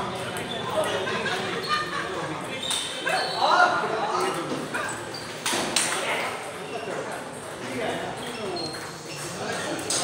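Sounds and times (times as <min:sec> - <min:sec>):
players' voices: 0:00.0 - 0:10.0.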